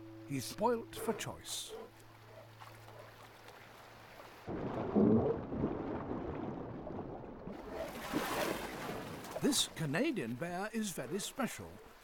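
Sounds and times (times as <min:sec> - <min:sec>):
faint river water: 0:00.0 - 0:12.0
underwater churning and bubbling: 0:04.4 - 0:09.2.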